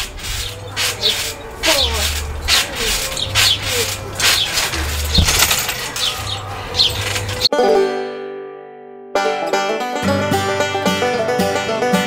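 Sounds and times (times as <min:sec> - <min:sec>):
trampoline springs squeaking: 0:00.0 - 0:07.5.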